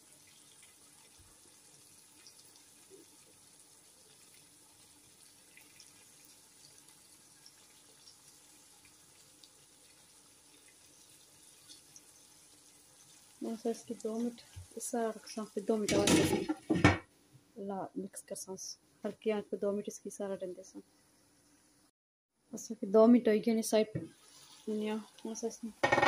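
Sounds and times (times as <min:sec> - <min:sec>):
gravy simmering hiss: 0:00.0 - 0:16.8, 0:23.6 - 0:26.0.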